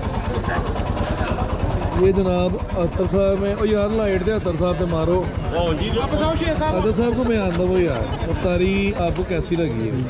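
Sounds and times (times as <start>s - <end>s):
motorcycle engine idling: 0.0s - 10.0s.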